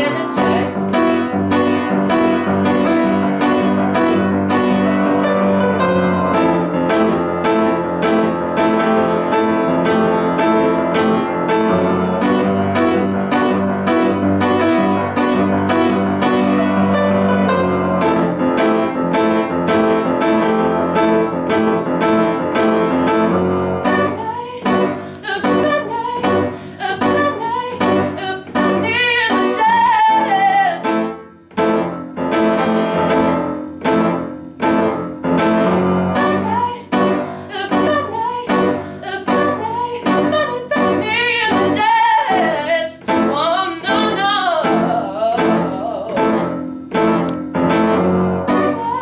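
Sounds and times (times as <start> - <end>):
woman singing with vibrato: 0.0 - 1.0, 23.5 - 31.2, 35.8 - 46.7, 48.1 - 49.0
solo piano chords: 0.0 - 49.0.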